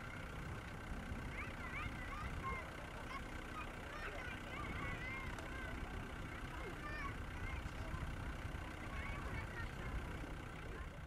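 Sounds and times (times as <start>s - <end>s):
bonfire rumbling: 0.0s - 11.0s
distant voices: 0.0s - 11.0s.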